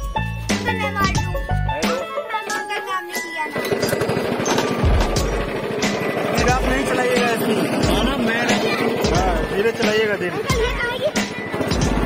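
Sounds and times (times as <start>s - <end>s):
background music: 0.0s - 12.0s
go-kart engine running: 3.5s - 12.0s
voices: 5.4s - 12.0s.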